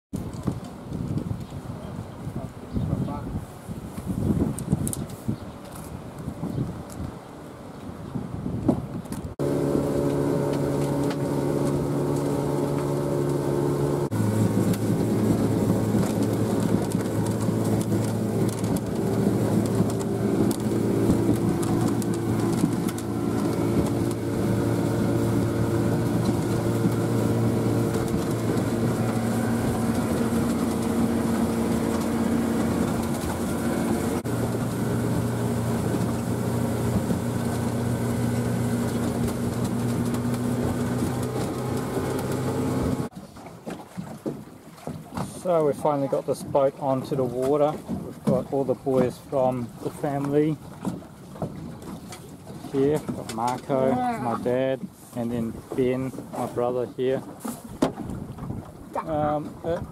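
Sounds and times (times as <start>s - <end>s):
water rushing against hull: 0.1s - 59.9s
motorboat engine running: 8.6s - 59.9s.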